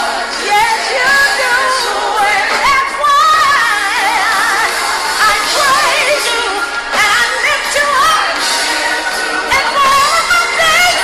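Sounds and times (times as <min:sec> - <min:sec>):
worship music: 0:00.0 - 0:11.0.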